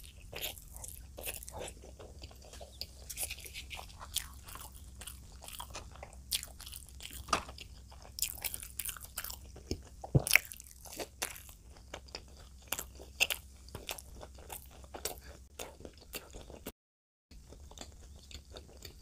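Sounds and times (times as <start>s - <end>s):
close-miked crunchy chewing: 0.0s - 16.7s, 17.4s - 19.0s.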